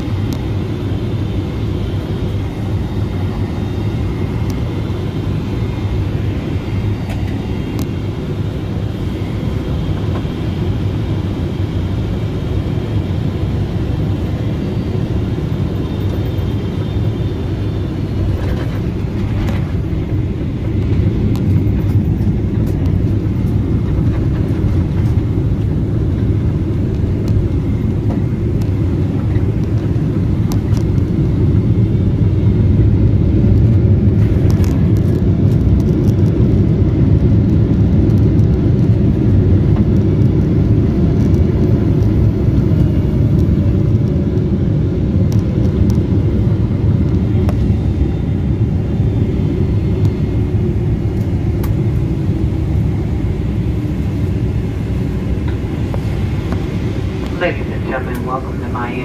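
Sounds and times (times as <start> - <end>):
jet engines idling: 0.0 - 59.0.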